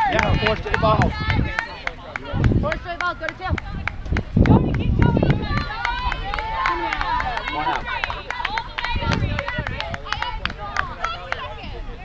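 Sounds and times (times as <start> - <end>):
people shouting and calling: 0.0 - 12.0
wind gusts on microphone: 0.0 - 12.0.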